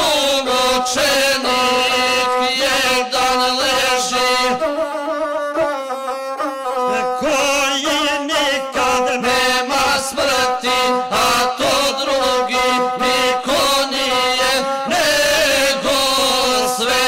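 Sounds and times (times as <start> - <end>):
man chanting: 0.0 - 17.0
bowed single-string instrument: 3.7 - 8.8.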